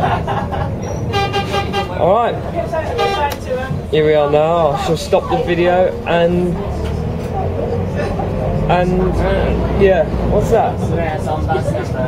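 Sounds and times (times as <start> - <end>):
bus running noise: 0.0 - 12.0
vehicle horn toot: 1.0 - 2.0, 2.9 - 3.4.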